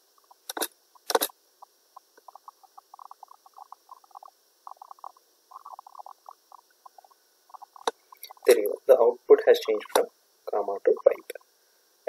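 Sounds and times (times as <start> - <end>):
faint irregular ticking: 0.0 - 8.8.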